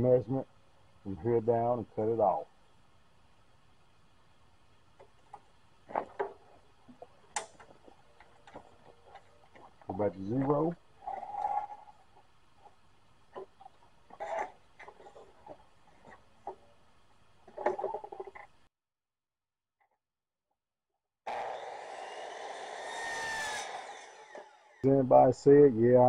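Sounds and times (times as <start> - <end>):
miter saw motor whine: 21.3 - 24.9.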